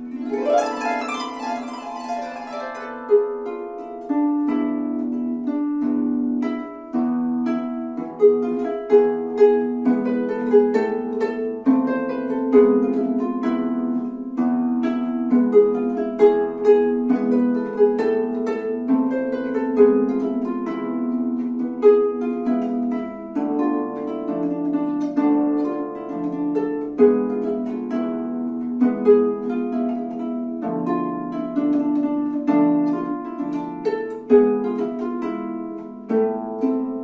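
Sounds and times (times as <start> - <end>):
harp plucked melody: 0.0 - 37.0.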